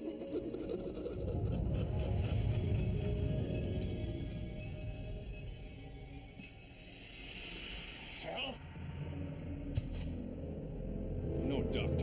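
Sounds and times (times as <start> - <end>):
low rumbling drone: 0.5 - 12.0.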